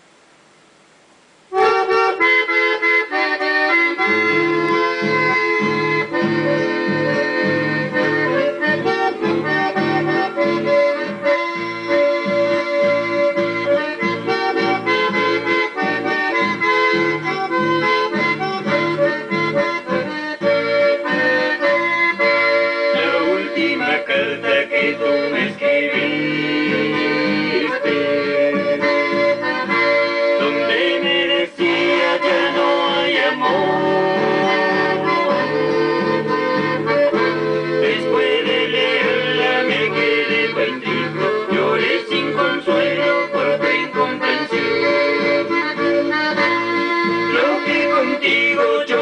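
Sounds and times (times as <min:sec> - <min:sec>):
faint hiss: 0:00.0 - 0:49.0
accordion folk music: 0:01.5 - 0:49.0.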